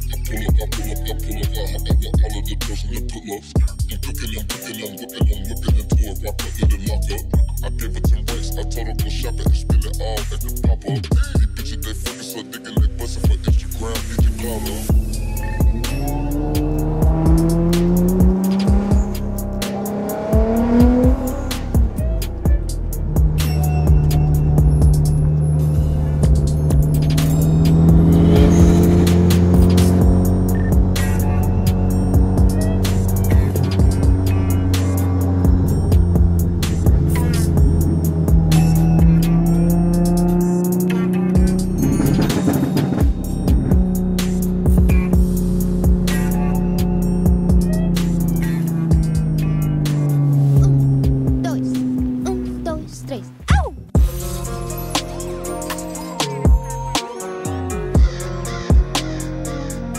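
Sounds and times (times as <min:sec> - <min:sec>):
music with steady beat: 0:00.0 - 0:52.8, 0:53.5 - 0:59.9
sports car engines accelerating: 0:00.0 - 0:59.9.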